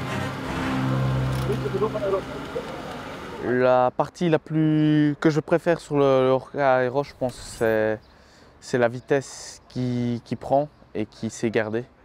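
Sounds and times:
background voices: 0:06.9 - 0:08.2.

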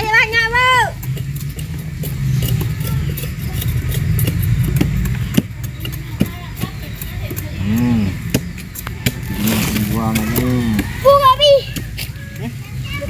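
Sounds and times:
machete scraping and chopping cane: 0:07.8 - 0:11.0.

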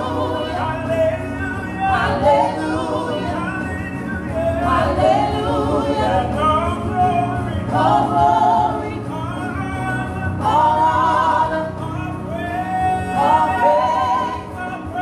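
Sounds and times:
group singing gospel: 0:00.0 - 0:15.0.

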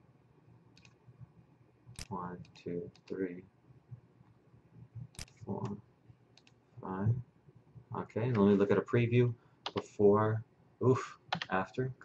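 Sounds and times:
computer mouse clicks: 0:00.8 - 0:01.0, 0:02.0 - 0:03.2, 0:05.1 - 0:06.6, 0:09.7 - 0:09.9.

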